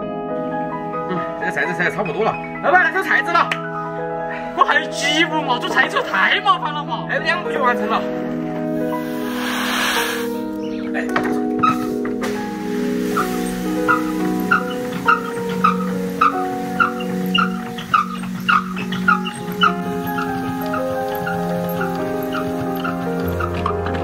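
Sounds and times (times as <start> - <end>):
background music: 0.0 - 24.0
hand-cranked fan squeaking: 8.8 - 24.0.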